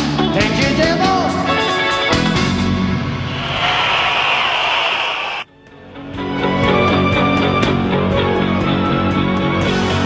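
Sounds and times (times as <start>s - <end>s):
live band music: 0.0s - 3.2s.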